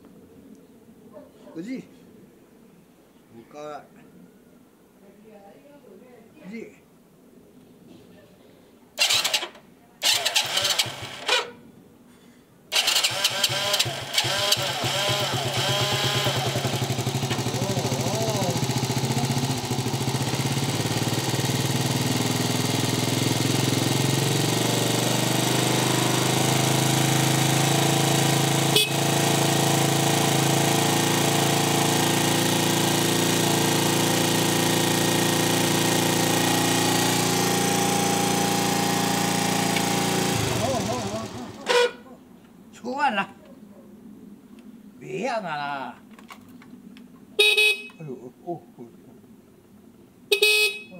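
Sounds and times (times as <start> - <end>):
scooter engine idling: 9.0 - 11.5, 12.7 - 42.0.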